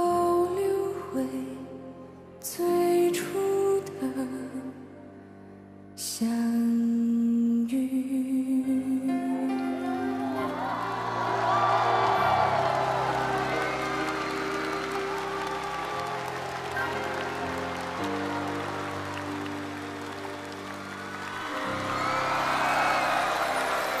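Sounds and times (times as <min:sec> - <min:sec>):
slow ballad instrumental chords: 0:08.2 - 0:24.0
audience applause: 0:10.1 - 0:24.0.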